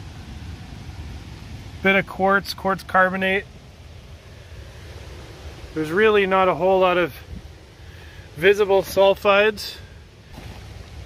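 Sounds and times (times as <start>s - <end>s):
low rumbling background noise: 0.0s - 11.0s.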